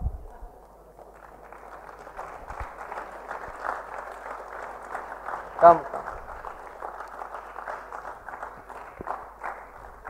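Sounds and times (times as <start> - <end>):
audience applauding: 0.6 - 10.0.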